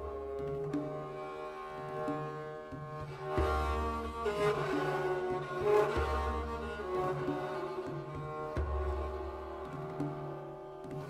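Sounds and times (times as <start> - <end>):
bowed strings melody: 0.0 - 11.0.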